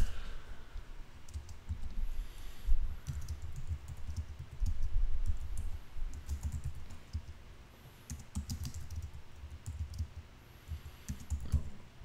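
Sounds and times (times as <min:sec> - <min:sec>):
typing on computer keyboard: 0:01.2 - 0:01.9, 0:03.0 - 0:07.4, 0:08.1 - 0:10.2, 0:10.8 - 0:11.7.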